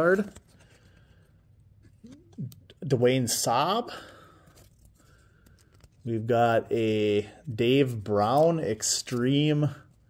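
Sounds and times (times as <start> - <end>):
trading cards rustling: 0.0 - 2.8, 4.3 - 10.0.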